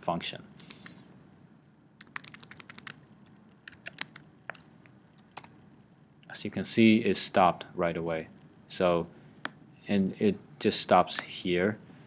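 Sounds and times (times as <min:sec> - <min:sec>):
computer keyboard keystrokes: 0:02.0 - 0:03.0, 0:03.6 - 0:04.6, 0:05.2 - 0:05.5.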